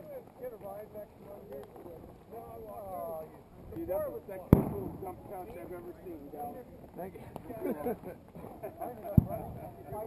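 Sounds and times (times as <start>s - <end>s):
grenade bang with echo: 4.5s - 5.0s.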